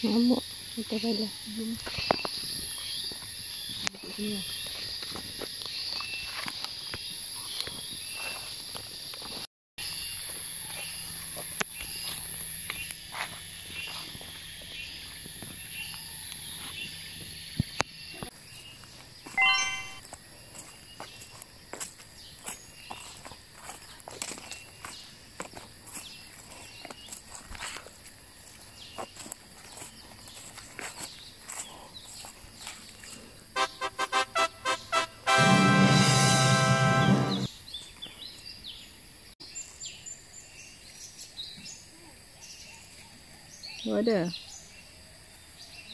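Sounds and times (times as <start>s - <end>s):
short chiming call: 19.4s - 20.0s
footsteps crunching dry leaves: 20.0s - 33.1s
music: 33.6s - 37.5s.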